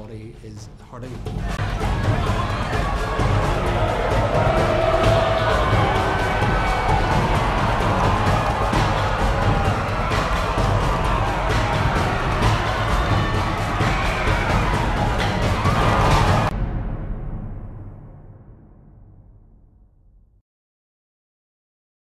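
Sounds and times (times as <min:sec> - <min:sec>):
music with heavy bass beat: 0:01.2 - 0:16.5.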